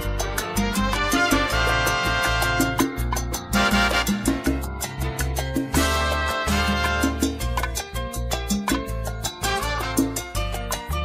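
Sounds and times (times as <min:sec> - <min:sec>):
salsa band backing track: 0:00.0 - 0:11.0.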